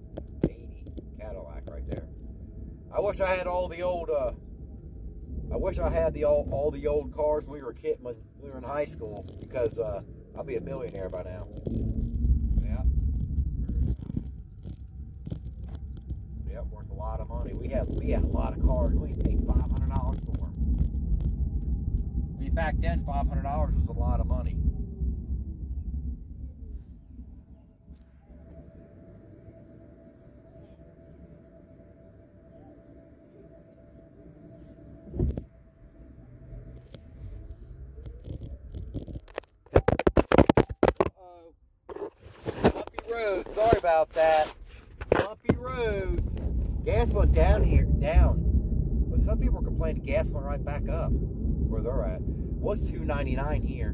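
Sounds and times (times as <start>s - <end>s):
tyre and road noise in car: 0.0s - 29.3s, 34.6s - 41.2s, 41.9s - 53.9s
faint steady hum: 0.0s - 53.9s
short thump: 35.1s - 35.4s
phone knocking and rattling: 38.2s - 41.2s.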